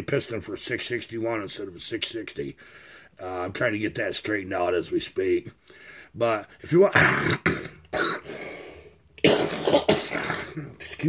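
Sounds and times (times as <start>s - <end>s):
man coughing harshly: 6.9s - 8.3s, 9.2s - 10.8s.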